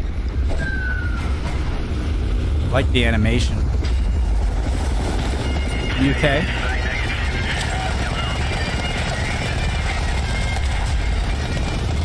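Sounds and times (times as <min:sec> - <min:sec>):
helicopter rotor rumble: 0:00.0 - 0:12.0.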